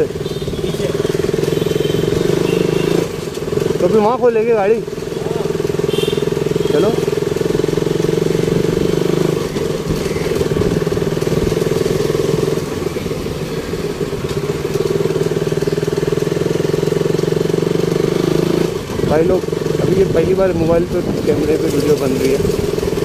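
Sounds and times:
motorcycle engine running: 0.0 - 23.0.

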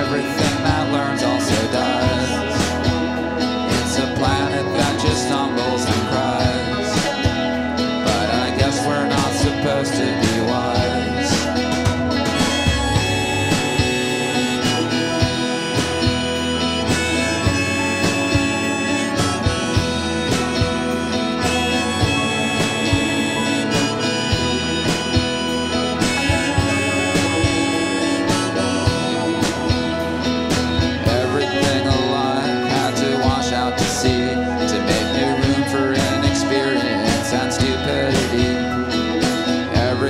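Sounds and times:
drum kit beat: 0.0 - 40.0
keyboard lead line: 0.0 - 40.0
strummed guitar: 0.0 - 40.0.

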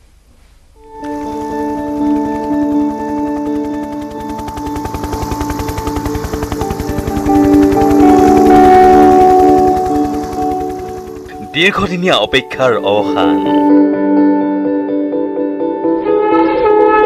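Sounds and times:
held musical tones: 0.8 - 14.4, 15.6 - 17.0
helicopter rotor beating: 0.9 - 13.7.

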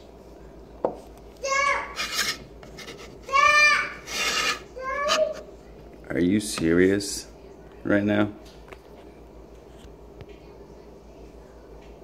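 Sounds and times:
rasping rubbing noises: 1.9 - 5.4.

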